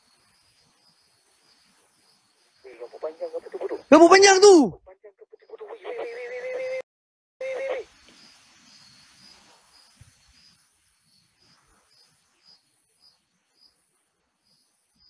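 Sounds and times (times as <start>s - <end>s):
insects chirping: 0.0s - 4.4s, 7.9s - 15.0s
voice-like cry: 3.9s - 4.8s.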